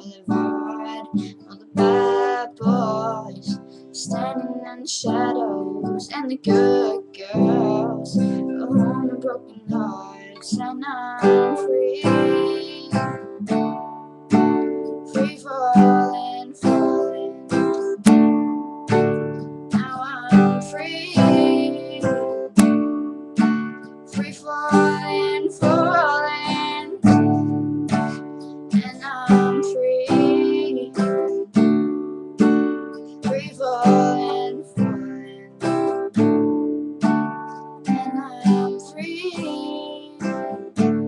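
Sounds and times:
acoustic guitar strumming chords: 0.0 - 41.0.

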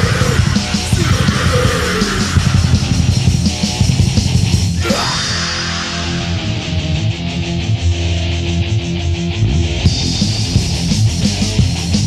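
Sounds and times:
busy drum kit: 0.0 - 7.9, 9.6 - 12.0
bass guitar: 0.0 - 12.0
distorted electric guitars: 0.0 - 12.0.

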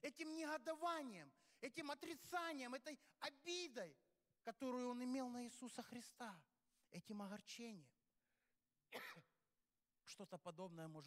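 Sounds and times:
man coughing: 8.9 - 9.3.

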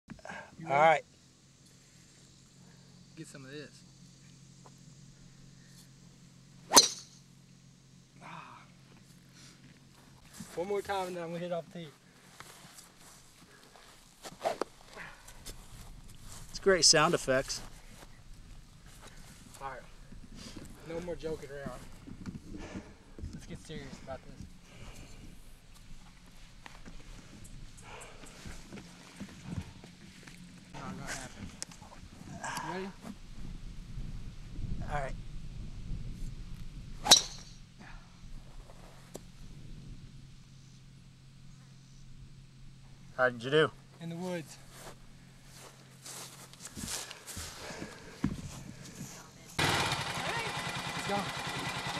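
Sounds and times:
golf club striking ball: 6.7 - 7.2, 37.0 - 37.6.

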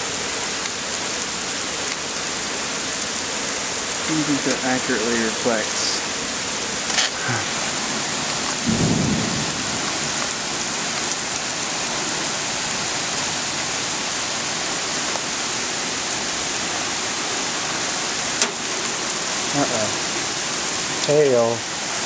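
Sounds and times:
heavy rain on pavement: 0.0 - 22.0.

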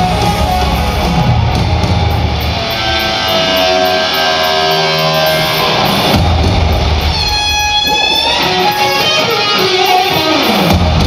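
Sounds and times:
electric guitar solo: 0.0 - 11.0.

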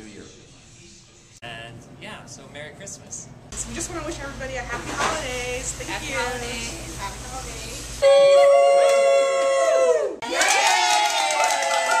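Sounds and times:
group cheering: 8.0 - 12.0.

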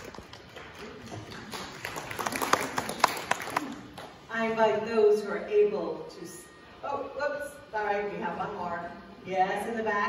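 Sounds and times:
scattered hand clapping: 0.0 - 4.2.

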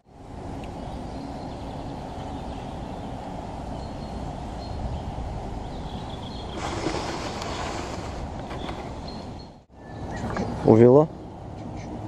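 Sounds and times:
rustling vegetation: 0.0 - 10.7
wind rumbling on microphone: 0.0 - 12.0.

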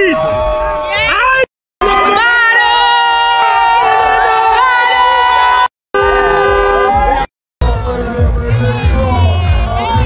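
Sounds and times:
crowd voices: 0.0 - 10.0
car horn blast: 6.0 - 7.3
party music with heavy bass beat: 6.0 - 10.0.

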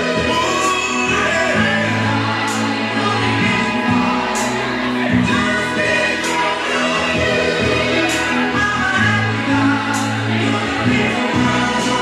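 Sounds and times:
bass line: 0.0 - 12.0
vocal group singing in harmony: 0.0 - 12.0.

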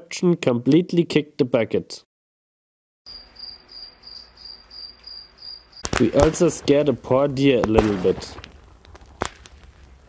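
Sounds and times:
high cricket-like chirping: 3.1 - 5.9
sudden loud crack: 5.8 - 10.0.

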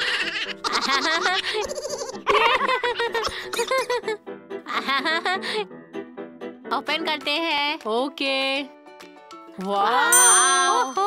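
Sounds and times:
girls laughing: 0.0 - 5.4.

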